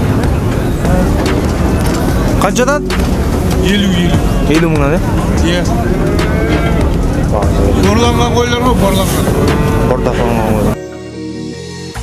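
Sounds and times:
crowd murmur: 0:00.0 - 0:10.8.

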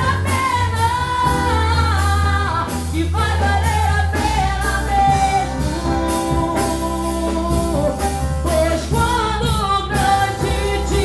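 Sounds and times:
instrumental accompaniment with beat: 0:00.0 - 0:11.0
woman singing into microphone: 0:00.0 - 0:11.0.

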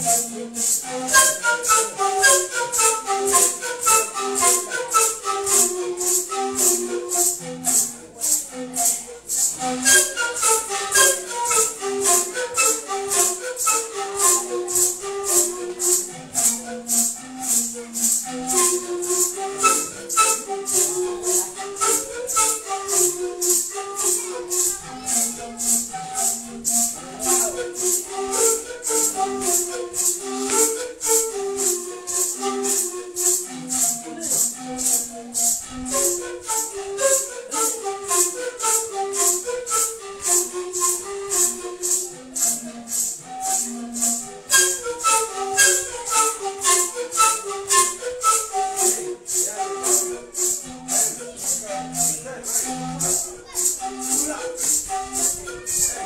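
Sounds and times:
maracas shaking: 0:00.0 - 0:56.0
panpipe melody: 0:00.0 - 0:56.0.

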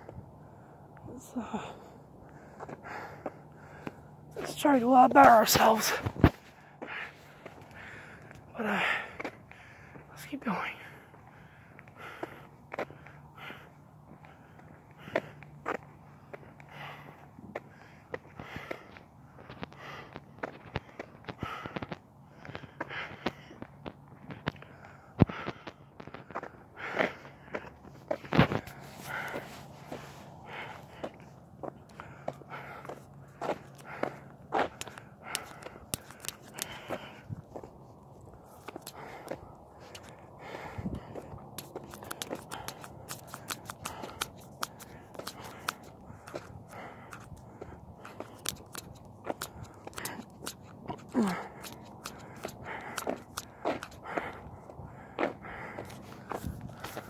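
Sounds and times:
footsteps: 0:25.4 - 0:57.0
crackling clicks: 0:41.5 - 0:47.4.

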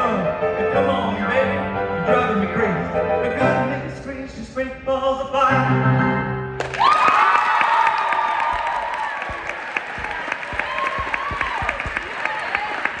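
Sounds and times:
audience applauding: 0:06.6 - 0:13.0
people shouting cheers: 0:06.7 - 0:13.0.

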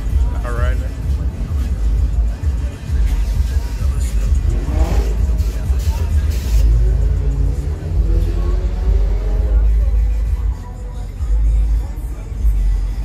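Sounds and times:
loud bass-heavy music: 0:00.0 - 0:13.0
voices: 0:00.0 - 0:13.0
engine revving: 0:03.5 - 0:10.4.

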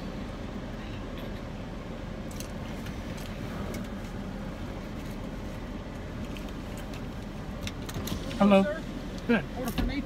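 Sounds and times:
car idling low rumble: 0:00.0 - 0:10.0.

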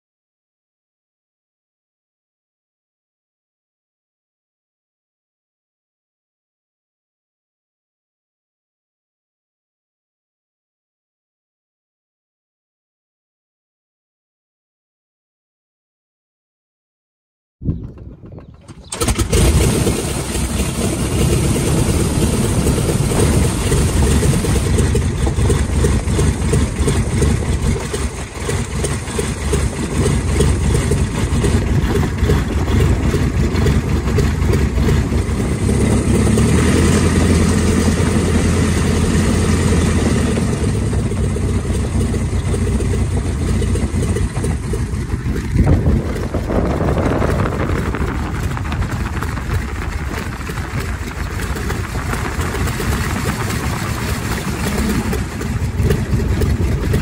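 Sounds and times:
biplane engine running: 0:17.7 - 0:57.0.

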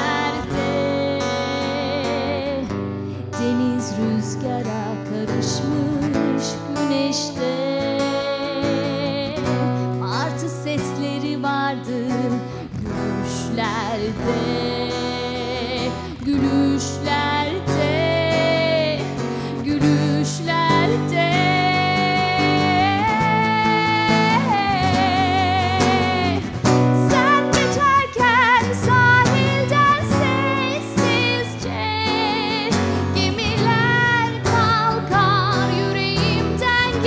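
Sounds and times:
acoustic guitar chords: 0:00.0 - 0:37.0
woman singing with vibrato: 0:00.0 - 0:37.0.

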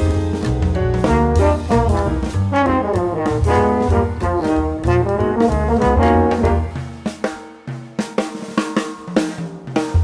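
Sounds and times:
jazz drum fill: 0:00.0 - 0:10.0.

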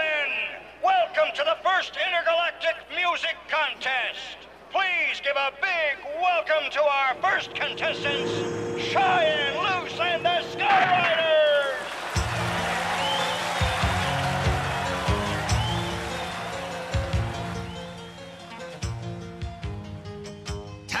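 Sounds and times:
crowd shouting and cheering: 0:06.1 - 0:18.9
rock band on keytars: 0:06.6 - 0:21.0
drum beat: 0:11.9 - 0:18.0
bass: 0:12.2 - 0:21.0.

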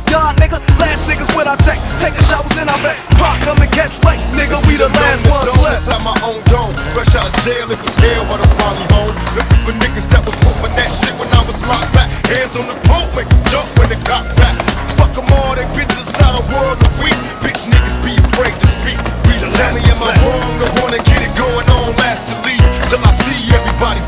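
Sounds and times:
hip-hop music with heavy bass beat: 0:00.0 - 0:24.0
skateboard clacks: 0:00.0 - 0:24.0
skateboard wheels rolling on concrete: 0:00.0 - 0:24.0.

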